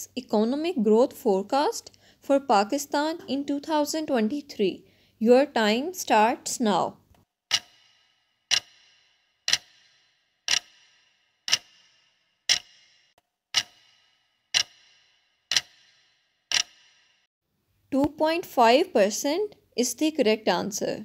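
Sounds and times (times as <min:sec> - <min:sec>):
clock ticking: 0:07.5 - 0:17.1.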